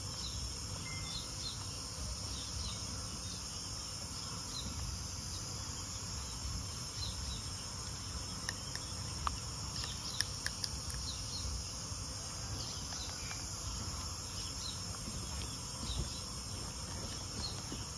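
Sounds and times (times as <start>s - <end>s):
insect chorus: 0.0s - 17.9s.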